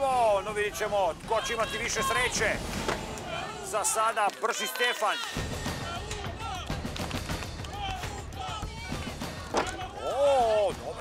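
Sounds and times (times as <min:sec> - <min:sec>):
background music: 0:00.0 - 0:11.0
voices shouting: 0:00.5 - 0:11.0.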